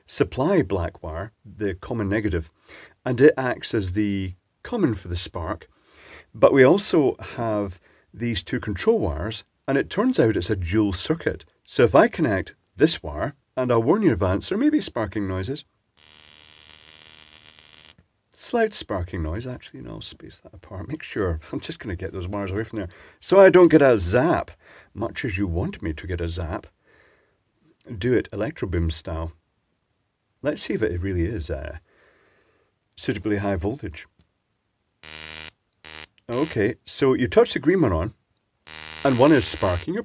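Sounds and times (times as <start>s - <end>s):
igniter sparks crackling buzz: 16.0s - 18.0s, 35.0s - 36.6s, 38.7s - 39.9s
igniter spark snaps: 35.0s - 36.6s.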